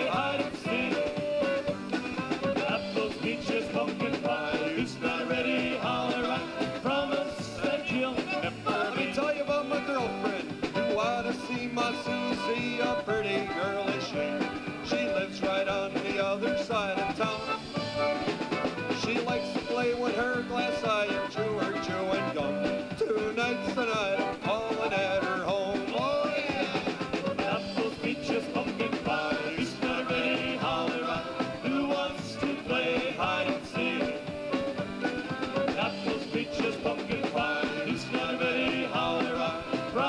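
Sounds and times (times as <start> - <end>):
dance band playing: 0.0 - 40.0.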